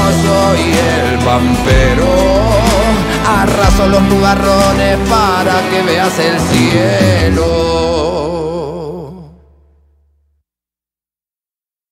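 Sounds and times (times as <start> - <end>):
held sung note of rock song: 0.0 - 9.6
low bass tone: 0.0 - 10.3.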